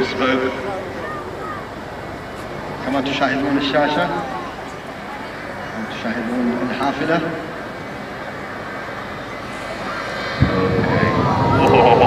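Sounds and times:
jet engine rumble: 0.0 - 12.0.

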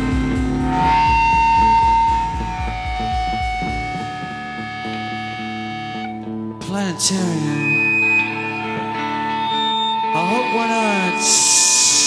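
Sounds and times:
steady drum beat: 0.0 - 4.7
long held high note: 0.0 - 12.0
rock band playing: 0.0 - 12.0.

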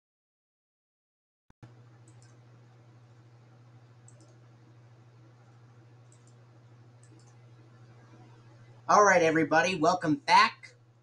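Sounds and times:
steady low hum: 1.6 - 11.0
computer mouse clicks: 2.0 - 2.5, 4.0 - 4.5, 6.0 - 6.4, 7.0 - 7.5.

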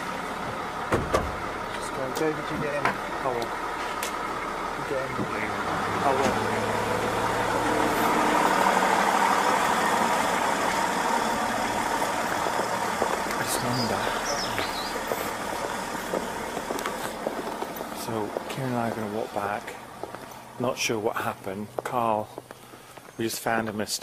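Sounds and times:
car engine idling: 0.0 - 23.2.

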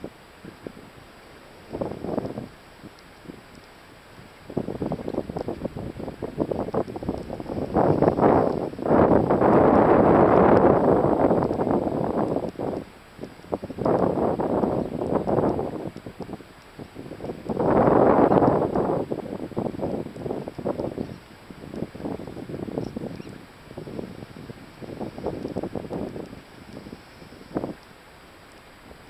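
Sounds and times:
wind buffeting microphone: 0.0 - 27.9.

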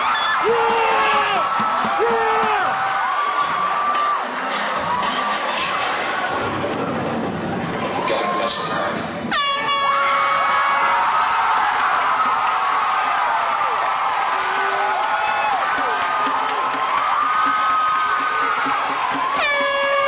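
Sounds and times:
audience cheering and whooping: 0.0 - 9.0, 9.6 - 20.0
loud dance music: 3.4 - 9.4
air horn blast: 9.3 - 10.5, 19.4 - 20.0.

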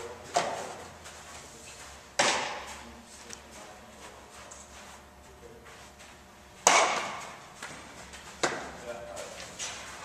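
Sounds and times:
baseball smacking into glove: 6.6 - 7.4.

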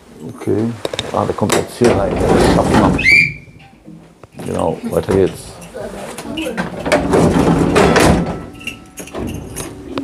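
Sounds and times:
wooden door sliding shut: 1.8 - 3.4, 6.6 - 8.5.

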